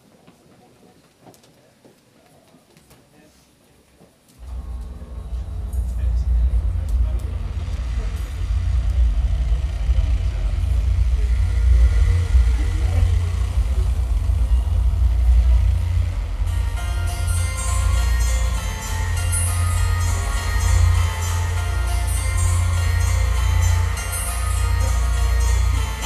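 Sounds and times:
deep rumble through sound system: 0:04.4 - 0:26.0.

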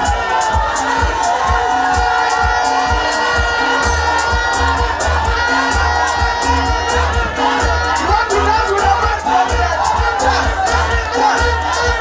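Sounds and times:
crowd cheering and shouting: 0:00.0 - 0:12.0
loud music with heavy bass: 0:00.0 - 0:12.0.

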